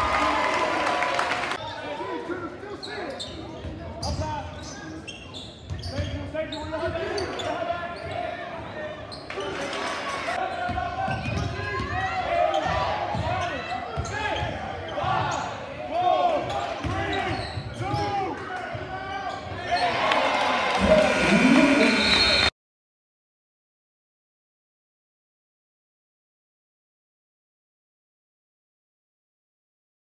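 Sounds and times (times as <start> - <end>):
crowd chatter and shouts: 6.3 - 22.5.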